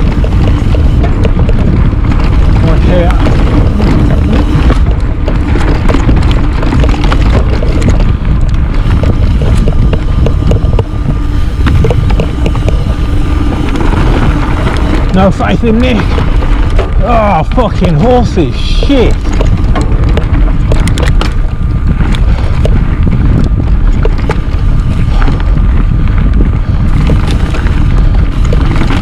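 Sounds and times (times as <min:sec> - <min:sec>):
bike clicks and rattles: 0:00.0 - 0:29.0
bike tyre noise: 0:00.0 - 0:29.0
wind rushing over microphone: 0:00.0 - 0:29.0.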